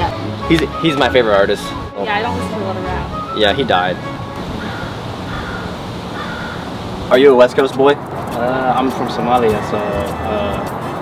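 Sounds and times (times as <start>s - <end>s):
crow cawing: 4.4s - 6.9s.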